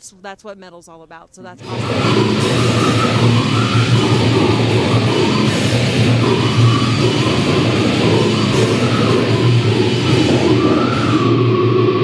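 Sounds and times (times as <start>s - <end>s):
heavy metal band playing: 1.6s - 12.0s
held high wavering note: 1.6s - 12.0s.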